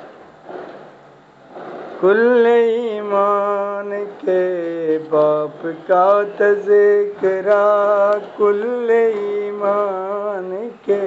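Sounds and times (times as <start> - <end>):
man singing: 2.0 - 11.0.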